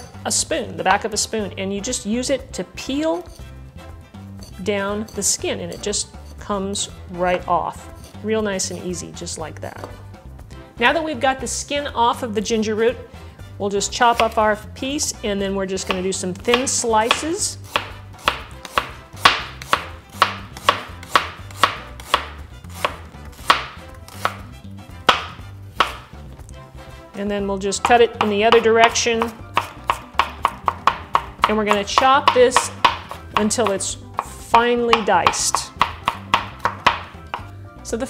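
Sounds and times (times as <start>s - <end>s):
knife slicing on cutting board: 15.9s - 24.5s, 25.1s - 26.1s, 29.2s - 30.8s.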